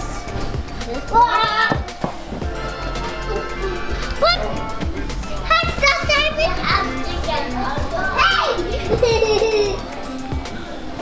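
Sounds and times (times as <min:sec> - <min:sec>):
background music: 0:00.0 - 0:11.0
children's playful shouts: 0:00.9 - 0:01.9, 0:03.1 - 0:09.9.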